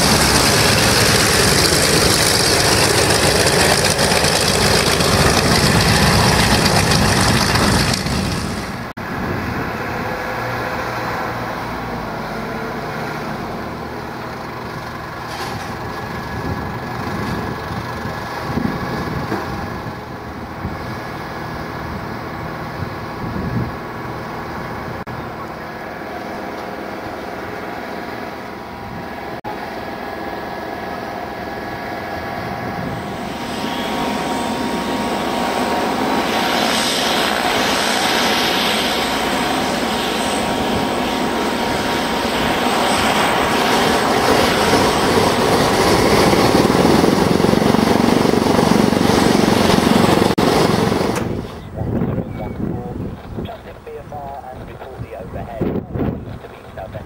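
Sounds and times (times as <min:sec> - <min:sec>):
propeller aircraft engines running: 0:00.0 - 0:57.0.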